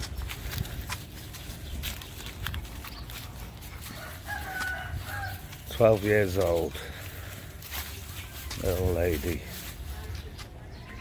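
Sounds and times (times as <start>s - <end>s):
footsteps on grass: 0.0s - 11.0s
leaves crackling and rustling: 0.0s - 11.0s.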